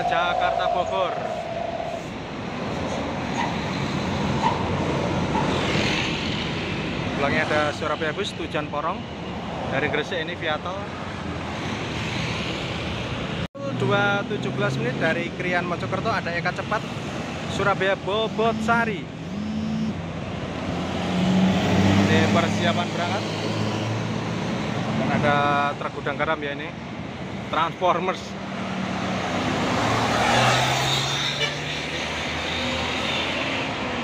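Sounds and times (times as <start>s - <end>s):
street traffic: 0.0s - 34.0s.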